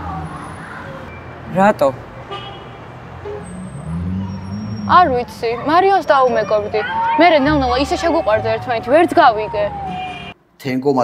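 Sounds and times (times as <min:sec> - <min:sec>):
vehicle engine humming: 0:00.0 - 0:10.4.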